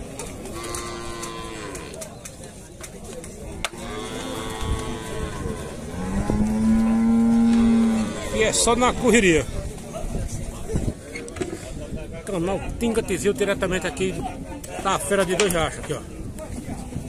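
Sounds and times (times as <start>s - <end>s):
cattle mooing: 0.5s - 2.0s, 3.8s - 8.6s.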